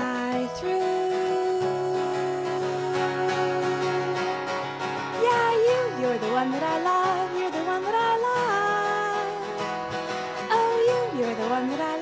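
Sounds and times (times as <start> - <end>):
acoustic guitar strumming: 0.0 - 12.0
woman singing: 0.0 - 12.0.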